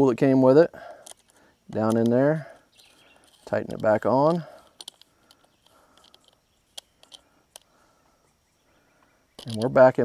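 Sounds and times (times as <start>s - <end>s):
small wrench clicking: 3.2s - 7.7s.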